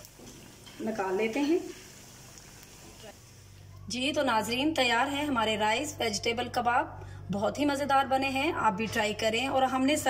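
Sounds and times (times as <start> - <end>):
food deep-frying in oil: 0.0 - 5.1.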